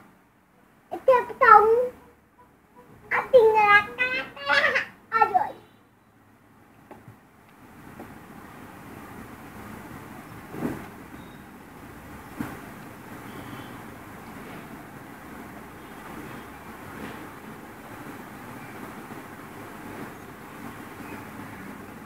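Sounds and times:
rumbling background noise: 0.0s - 5.6s.

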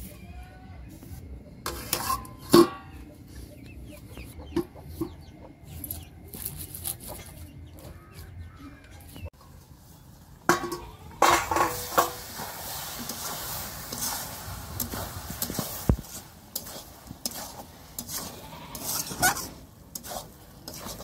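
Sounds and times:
metal spatula scraping a pan: 1.6s - 3.5s, 9.4s - 21.0s
meat sizzling: 11.2s - 21.0s.

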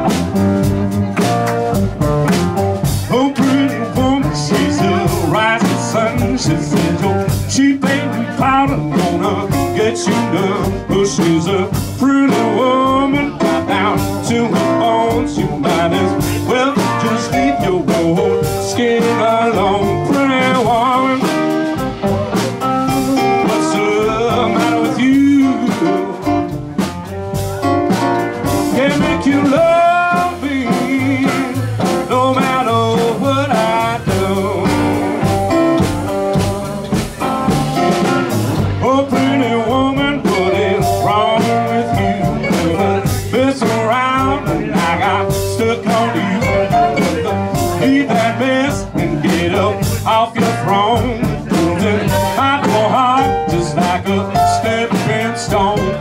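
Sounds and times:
blues band playing: 0.0s - 56.0s
person singing: 0.0s - 56.0s.

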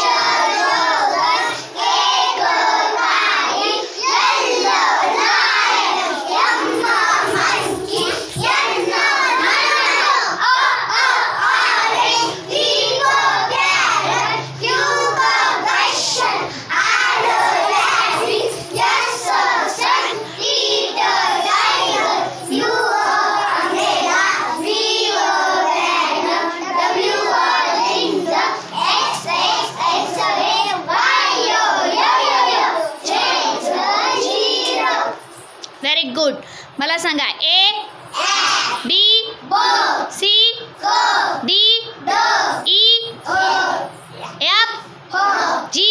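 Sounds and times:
children singing together: 0.0s - 35.4s, 38.1s - 44.2s, 44.9s - 45.8s.

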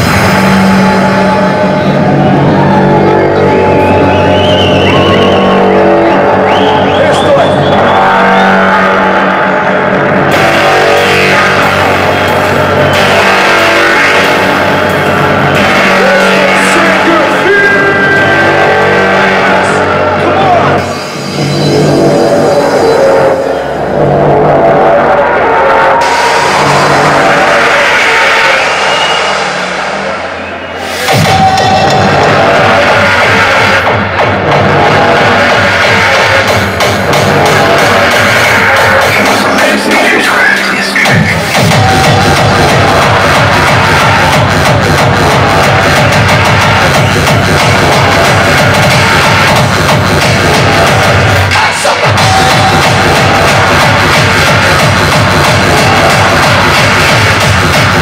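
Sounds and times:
hardcore electronic dance music: 0.0s - 58.0s
pounding kick drum: 41.1s - 58.0s.

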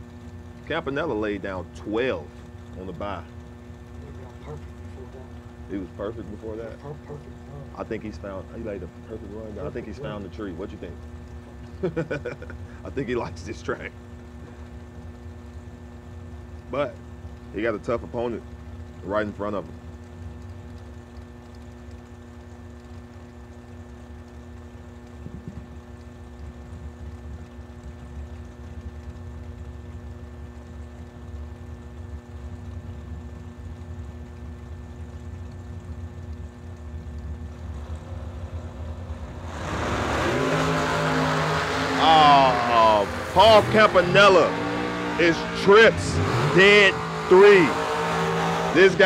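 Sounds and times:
dragster engines idling: 0.0s - 15.5s, 35.1s - 47.8s, 48.7s - 49.0s
engines accelerating at full throttle: 37.5s - 49.0s.

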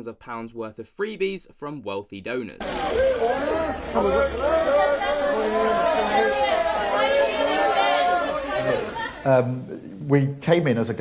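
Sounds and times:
crowd chatter: 2.6s - 10.0s.

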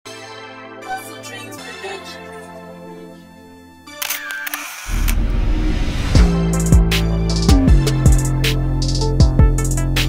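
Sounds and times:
deep bass rumble: 5.0s - 10.0s
music beat: 6.0s - 10.0s.

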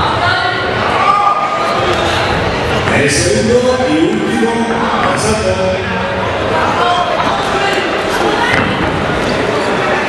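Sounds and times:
shouting voices echoing in hall: 0.0s - 10.0s.

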